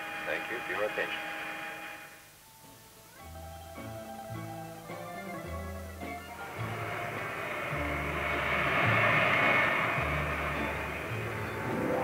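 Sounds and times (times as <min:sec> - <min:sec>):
low hiss: 0:00.0 - 0:12.0
aircraft cabin hum: 0:06.2 - 0:12.0.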